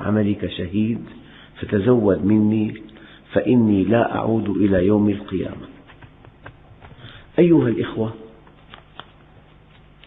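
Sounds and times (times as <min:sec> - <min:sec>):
low steady hiss: 0:00.0 - 0:10.0
man's voice: 0:07.4 - 0:08.2.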